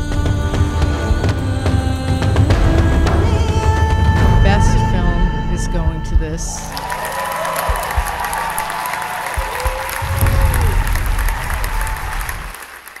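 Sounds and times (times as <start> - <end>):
audience applauding: 6.7 - 13.0.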